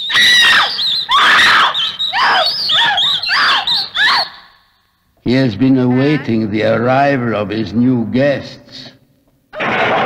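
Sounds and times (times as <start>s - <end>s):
woman screaming: 0.1s - 4.6s.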